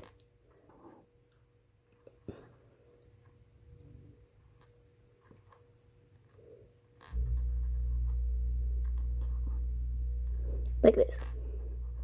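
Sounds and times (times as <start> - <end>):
steady low rumble: 7.1 - 12.0.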